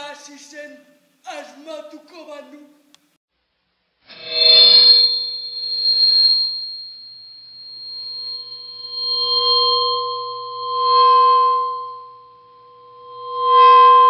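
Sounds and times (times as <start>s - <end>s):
bell-like metallic ringing: 4.3s - 14.0s.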